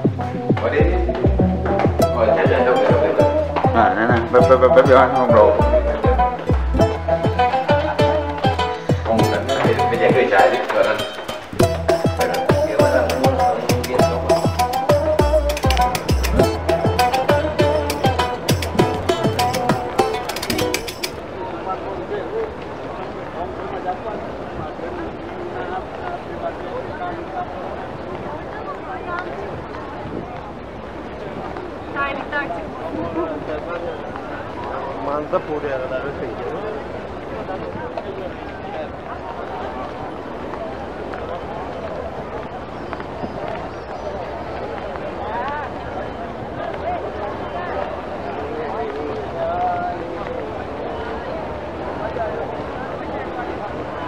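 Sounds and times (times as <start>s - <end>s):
music with heavy beat: 0.0s - 10.4s, 11.0s - 21.1s
crowd talking: 0.0s - 54.0s.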